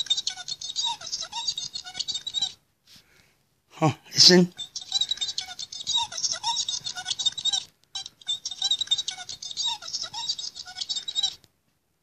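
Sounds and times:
tinny electronic toy chatter: 0:00.0 - 0:02.6, 0:04.2 - 0:11.4.

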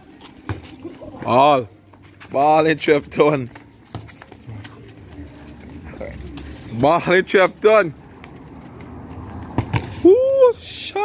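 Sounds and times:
outdoor background noise: 0:00.0 - 0:11.0
football being kicked: 0:09.5 - 0:10.0.

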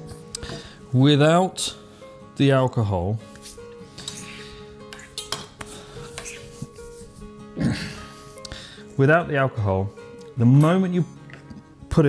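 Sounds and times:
soft background music: 0:00.0 - 0:12.0
cutlery clinking: 0:04.0 - 0:06.4.

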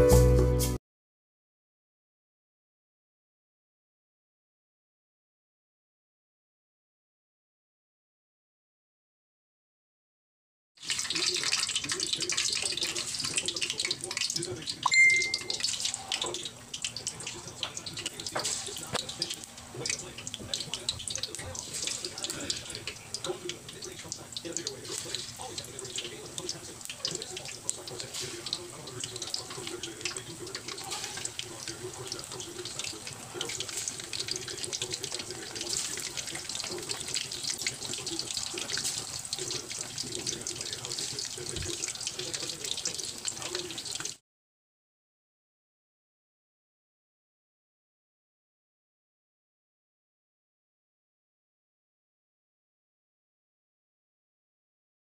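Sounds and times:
fish sizzling in hot oil: 0:10.8 - 0:44.2
short high tone: 0:14.9 - 0:15.5.

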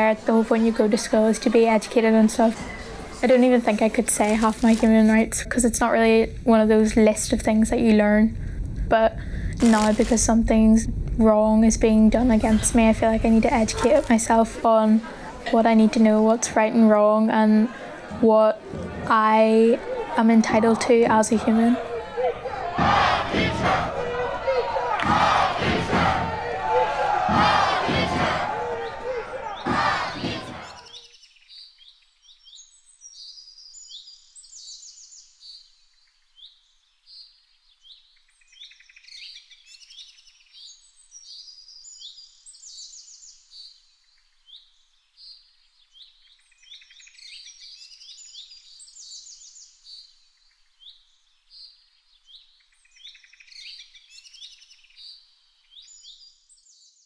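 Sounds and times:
small birds chirping and trilling: 0:30.6 - 0:57.0.

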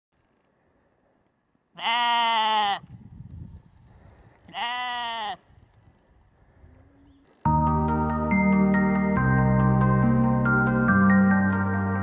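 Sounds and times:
sheep bleating: 0:01.8 - 0:02.8, 0:04.5 - 0:05.4.

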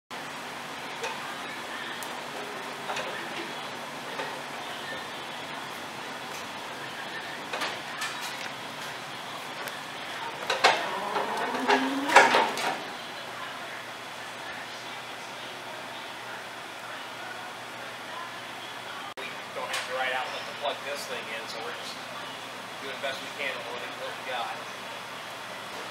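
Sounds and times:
brief rising tone: 0:10.6 - 0:12.6.

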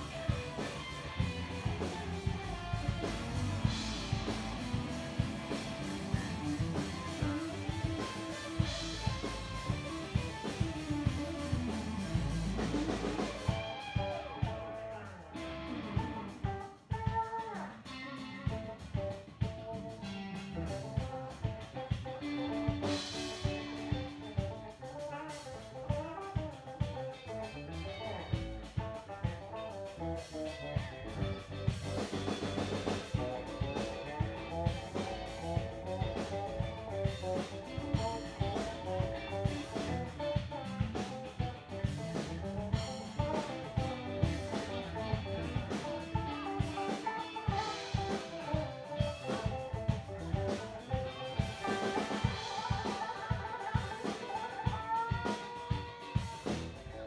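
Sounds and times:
drum beat: 0:00.0 - 0:17.5, 0:30.6 - 0:57.0
electric guitar: 0:00.0 - 0:57.0.

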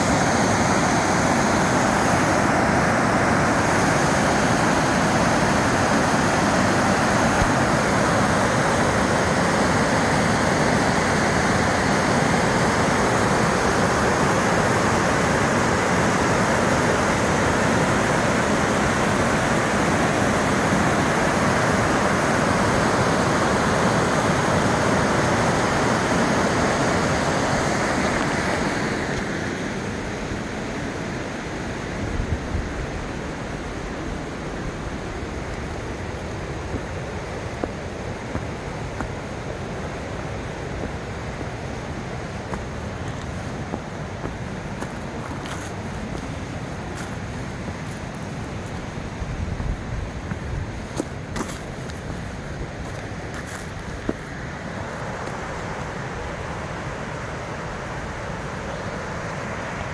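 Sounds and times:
waterfall roaring: 0:00.0 - 0:59.9.

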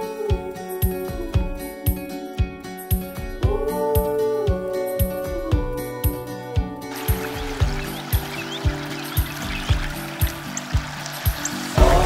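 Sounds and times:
background music with steady beat: 0:00.0 - 0:12.0
water trickling: 0:06.9 - 0:12.0.

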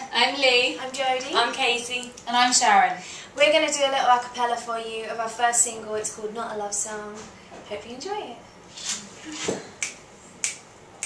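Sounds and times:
finger snaps: 0:09.8 - 0:10.7.

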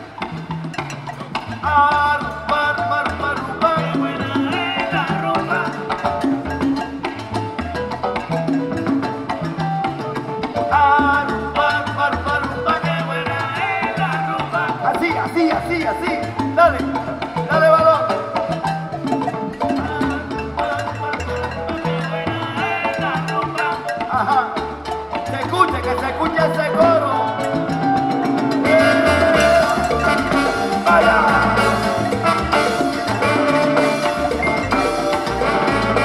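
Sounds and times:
salsa band playing: 0:00.0 - 0:36.0.

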